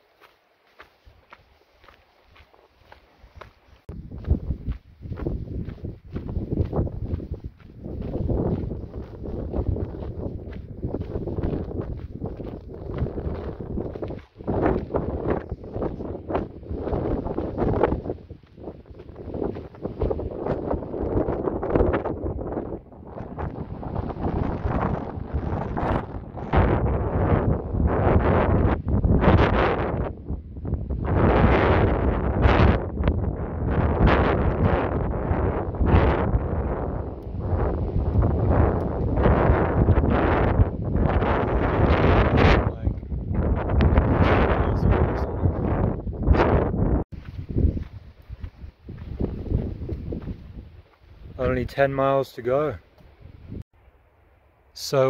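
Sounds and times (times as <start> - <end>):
wind buffeting microphone: 3.3 - 51.9, 53.0 - 53.7.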